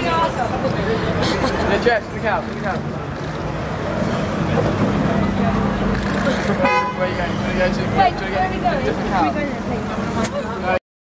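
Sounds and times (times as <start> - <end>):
cars passing: 0.0 - 10.8.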